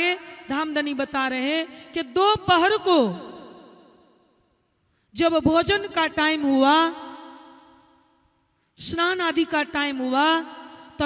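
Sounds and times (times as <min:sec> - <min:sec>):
woman's amplified voice with echo: 0:00.0 - 0:11.0.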